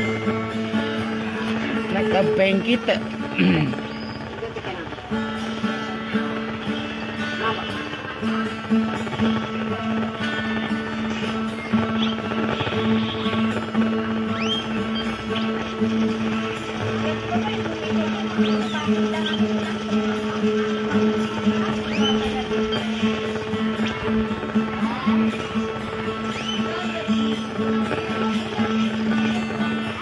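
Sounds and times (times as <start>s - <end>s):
acoustic guitar playing: 0.0s - 30.0s.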